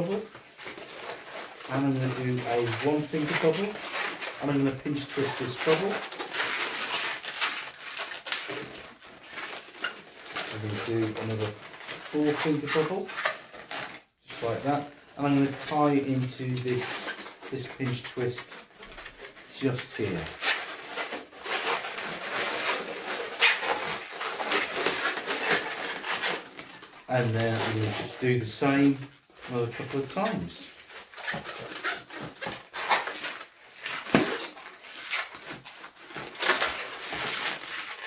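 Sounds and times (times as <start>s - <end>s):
balloons rubbing and squeaking: 0.0s - 38.0s.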